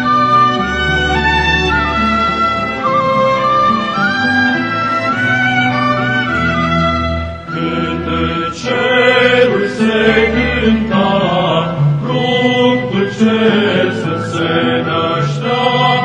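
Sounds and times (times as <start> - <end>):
string ensemble: 0.0 - 16.0
male choir singing: 7.5 - 16.0.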